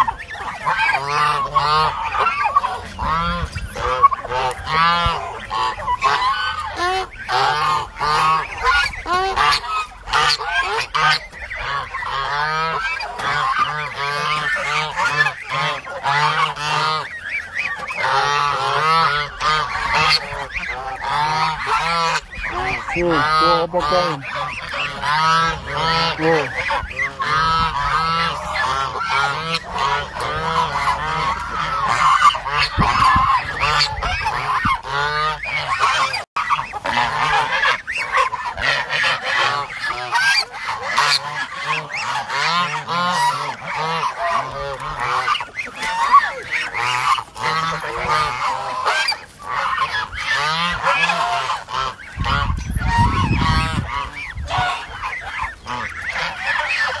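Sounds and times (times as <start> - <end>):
waterfowl calling: 0.0 - 57.0.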